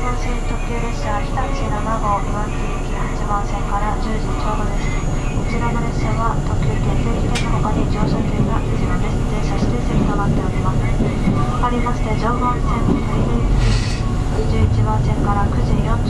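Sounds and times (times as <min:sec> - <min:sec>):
train wheels rumbling on rail: 0:00.0 - 0:16.0.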